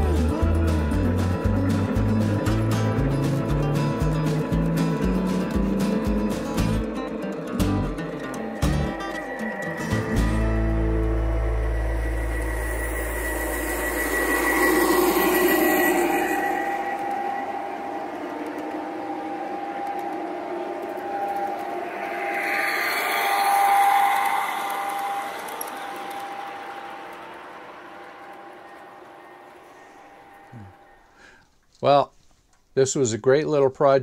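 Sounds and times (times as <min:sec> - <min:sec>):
model train running on track: 0:09.4 - 0:31.0.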